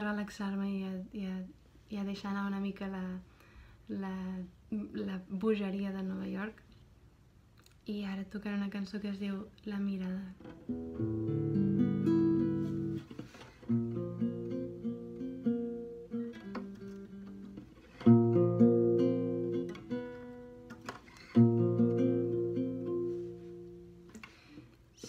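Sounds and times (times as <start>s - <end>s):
classical guitar fingerstyle: 10.4s - 24.3s.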